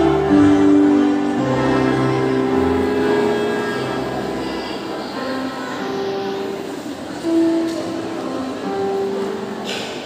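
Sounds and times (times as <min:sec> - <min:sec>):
melodica ensemble playing: 0:00.0 - 0:05.2.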